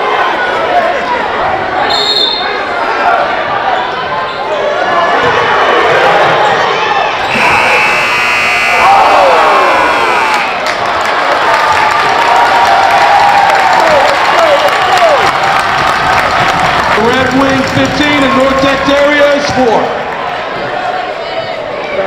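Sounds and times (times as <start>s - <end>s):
crowd shouting and cheering: 0.0s - 22.0s
steady high-pitched tone: 7.3s - 10.6s.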